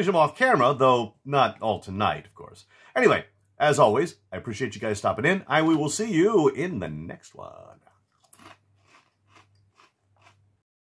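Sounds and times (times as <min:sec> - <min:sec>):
chewing crunchy snack: 0:07.8 - 0:10.5.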